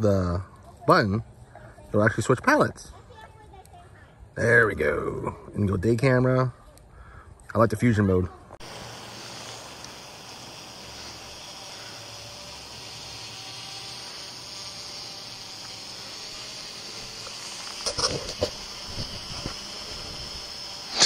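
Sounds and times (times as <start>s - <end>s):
drone rotor whirring: 8.6s - 21.0s.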